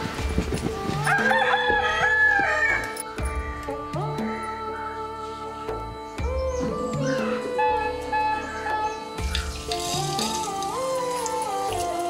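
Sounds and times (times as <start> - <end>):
quiet background music: 0.0 - 12.0
rooster crowing: 1.1 - 2.9.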